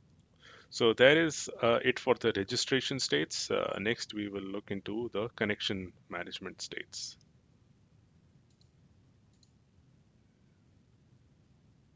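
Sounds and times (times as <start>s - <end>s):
faint short clicks: 8.5s - 9.6s.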